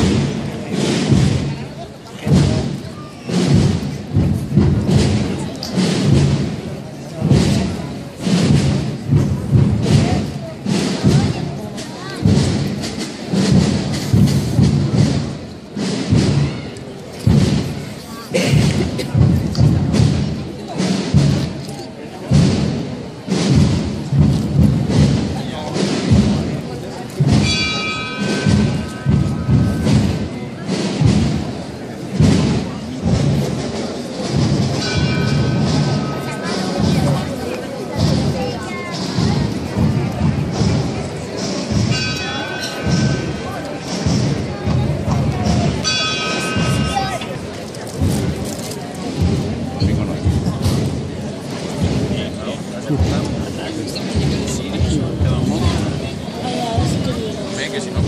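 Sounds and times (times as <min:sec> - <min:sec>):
marching drums beating: 0:00.0 - 0:58.0.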